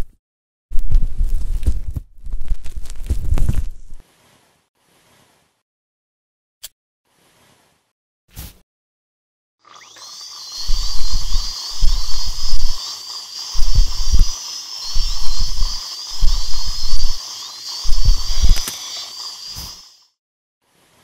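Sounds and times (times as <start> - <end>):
dental drill whining: 9.6 - 19.9
water spray hiss: 9.7 - 20.1.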